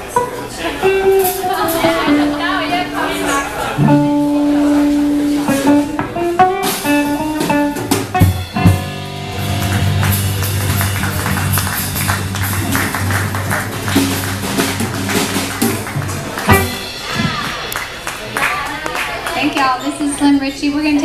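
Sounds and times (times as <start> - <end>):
guitar notes and runs: 0.0 - 18.4
live band playing swing: 0.0 - 21.0.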